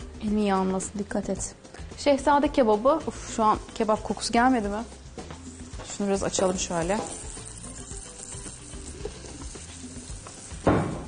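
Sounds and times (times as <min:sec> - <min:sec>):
food sizzling in a pot: 0:03.2 - 0:11.0.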